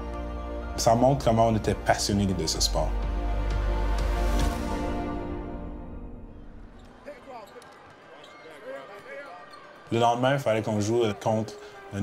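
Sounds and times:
players shouting: 0:06.8 - 0:12.0.

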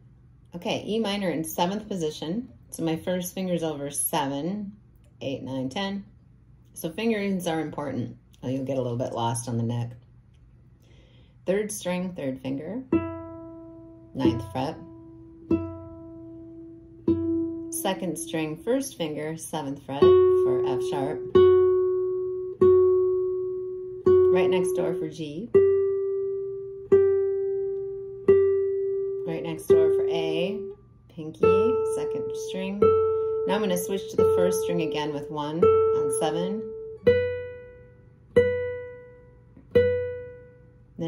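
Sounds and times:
classical guitar note plucked: 0:12.9 - 0:18.6, 0:20.0 - 0:40.7.

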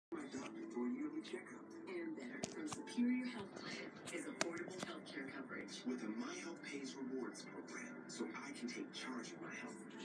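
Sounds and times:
faint television voice over music: 0:00.1 - 0:10.0.

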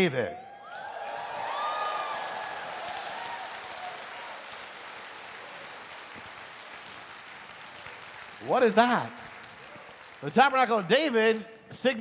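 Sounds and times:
audience applauding: 0:00.6 - 0:11.4.

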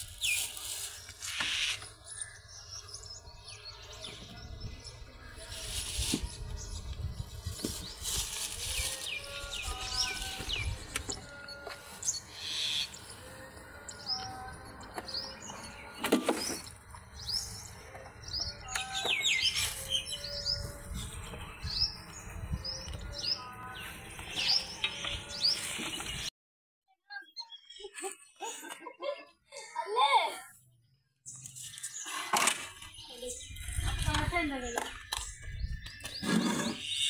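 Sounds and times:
birds chirping: 0:00.0 - 0:26.3, 0:27.1 - 0:37.0.

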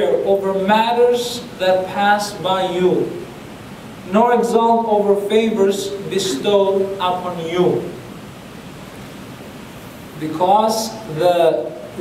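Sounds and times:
steady recording hiss: 0:00.0 - 0:12.0.

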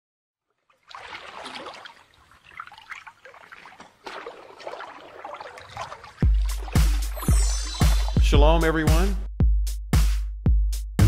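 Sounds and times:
water trickling and splashing: 0:00.4 - 0:08.3.

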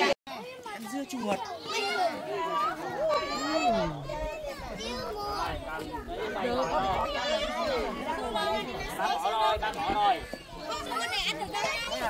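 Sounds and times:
children's voices: 0:00.0 - 0:12.0
people chattering: 0:00.0 - 0:12.0.

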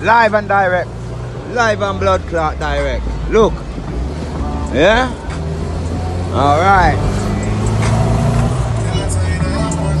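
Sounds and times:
car engine and road drone: 0:00.0 - 0:10.0.

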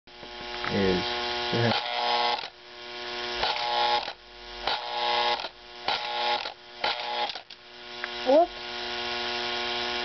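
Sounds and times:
electric mechanism buzzing: 0:00.1 - 0:10.0
mains hum: 0:00.1 - 0:10.0.

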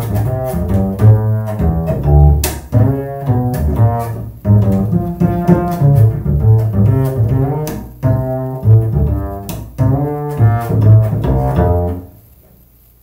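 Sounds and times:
double bass played pizzicato: 0:00.0 - 0:12.7.

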